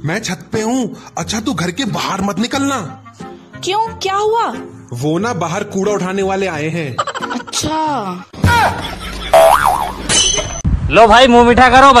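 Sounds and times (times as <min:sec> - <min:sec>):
springy wobbling comic tone: 0:09.3 - 0:10.0.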